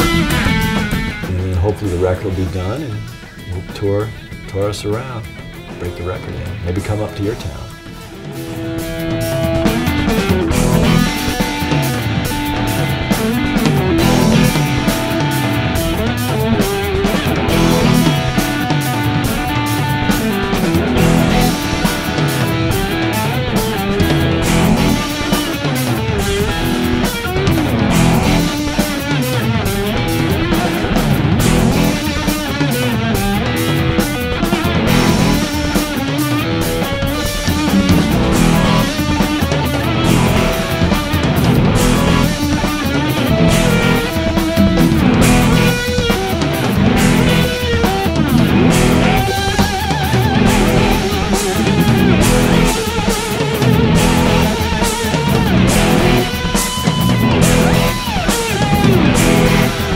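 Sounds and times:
bass guitar: 0:00.0 - 0:59.9
drum kit groove: 0:00.0 - 0:59.9
electric guitar lead: 0:00.0 - 0:59.9.

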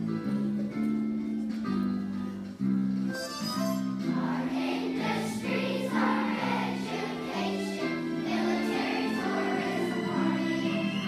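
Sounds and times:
piano accompaniment: 0:00.0 - 0:11.0
children's choir singing: 0:04.0 - 0:11.0.

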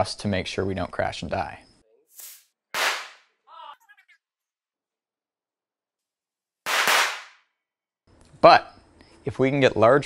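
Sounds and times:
small firework bursts with hiss: 0:02.1 - 0:03.2, 0:06.7 - 0:07.3.

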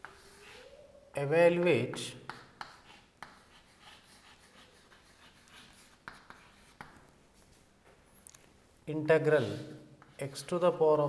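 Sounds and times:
chalk scratching on a chalkboard: 0:00.0 - 0:00.8, 0:01.9 - 0:07.6, 0:09.2 - 0:10.9.

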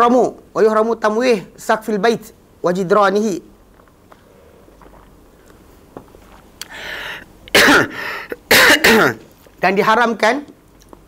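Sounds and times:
rasping breath: 0:06.6 - 0:07.3, 0:07.9 - 0:08.4
man coughing: 0:07.5 - 0:09.2.

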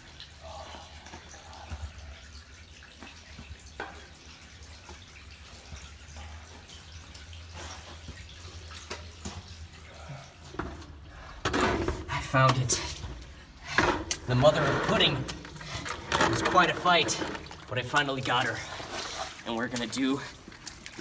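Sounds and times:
water trickling: 0:00.0 - 0:21.0
crawling scrapes in concrete pipe: 0:12.6 - 0:21.0.

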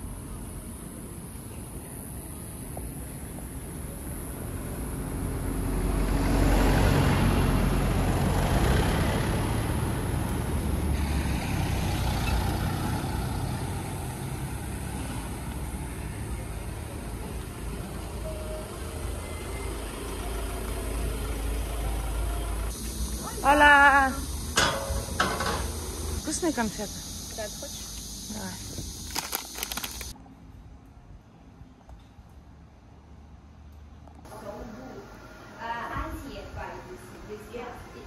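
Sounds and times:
low traffic rumble: 0:00.0 - 0:38.0
car passing: 0:03.5 - 0:28.5.

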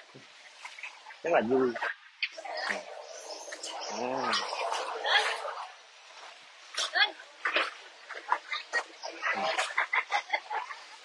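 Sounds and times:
people calling and chattering: 0:00.0 - 0:11.0.

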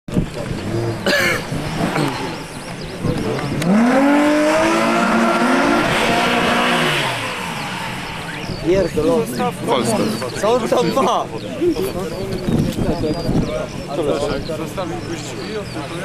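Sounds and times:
car engine revving: 0:00.2 - 0:10.2.

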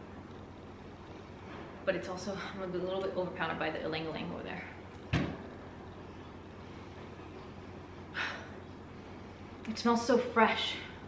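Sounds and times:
brief thump: 0:05.1 - 0:05.4.

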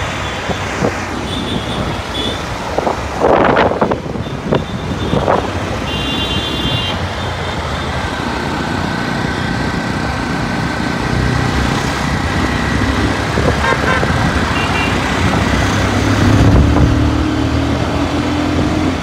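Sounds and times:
road and wind noise: 0:00.0 - 0:19.0.

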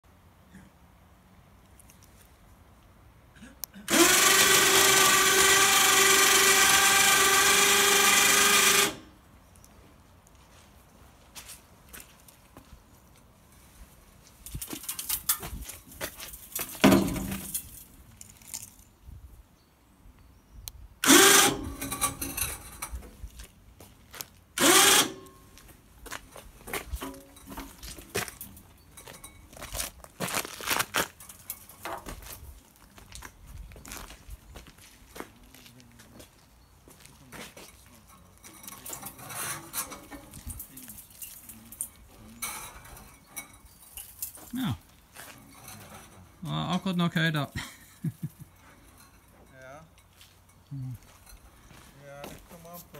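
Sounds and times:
electric winch running: 0:03.9 - 0:09.1, 0:21.0 - 0:22.6, 0:24.6 - 0:25.4.

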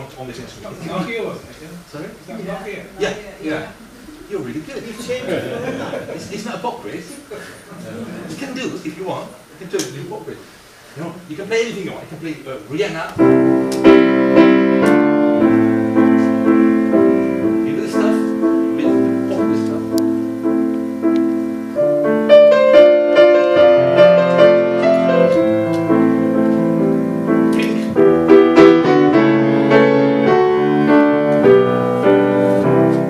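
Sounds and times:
grand piano pop melody: 0:13.2 - 0:33.0.

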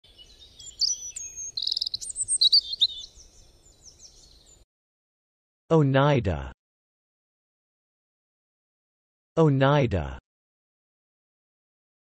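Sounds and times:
birds chirping and trilling: 0:00.0 - 0:04.6.

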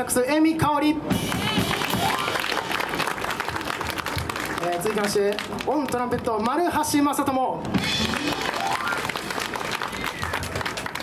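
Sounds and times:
audience applauding: 0:01.2 - 0:06.1, 0:07.8 - 0:11.0.

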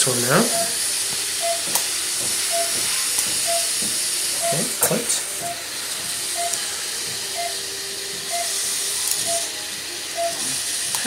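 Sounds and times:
pulse oximeter beeps: 0:00.4 - 0:00.8, 0:01.4 - 0:01.8, 0:02.4 - 0:03.8, 0:04.4 - 0:04.8, 0:05.4 - 0:05.6, 0:06.3 - 0:06.7, 0:07.3 - 0:07.6, 0:08.3 - 0:08.6, 0:09.2 - 0:09.5, 0:10.2 - 0:10.6.

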